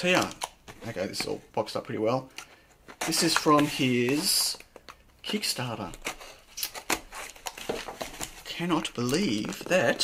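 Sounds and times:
packaging clicks and snaps: 0:00.0 - 0:01.2, 0:02.3 - 0:08.4
cardboard package rustling: 0:02.2 - 0:10.0.

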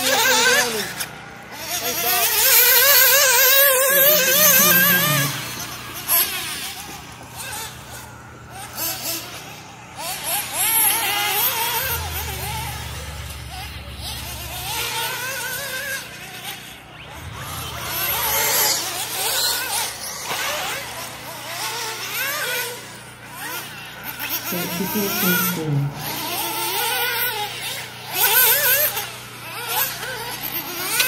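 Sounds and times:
model car engine revving: 0:00.0 - 0:31.0.

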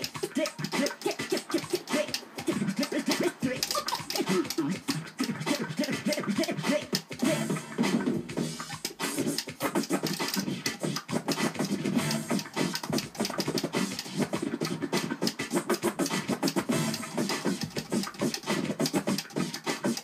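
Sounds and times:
vinyl record scratching: 0:00.0 - 0:20.0.

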